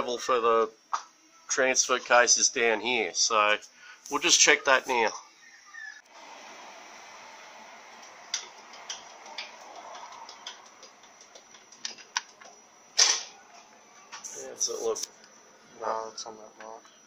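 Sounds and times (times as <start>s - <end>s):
workshop hiss: 3.5s - 5.2s, 6.1s - 11.4s, 14.1s - 15.1s.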